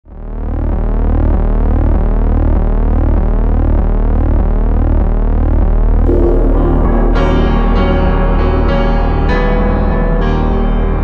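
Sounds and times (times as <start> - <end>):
deep synthesized hum: 0.1 - 10.0
repeating synth pitch sweeps: 6.1 - 8.9.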